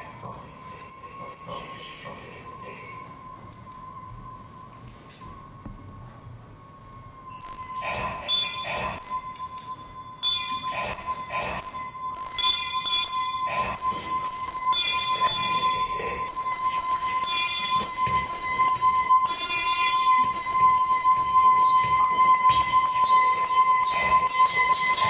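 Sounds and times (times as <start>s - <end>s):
steady high electronic tone: 0.0s - 25.0s
metallic electronic bell strikes: 7.3s - 25.0s.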